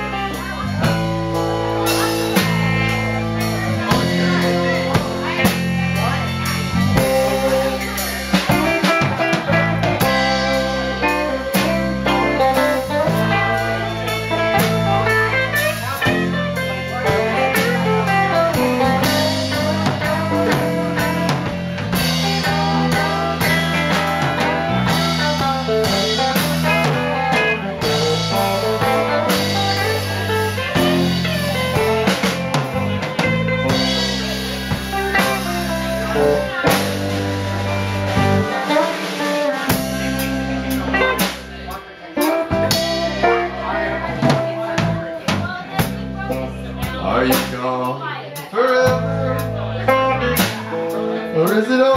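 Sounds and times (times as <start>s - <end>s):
drum kit: 0.0s - 51.9s
electric guitars: 0.0s - 51.9s.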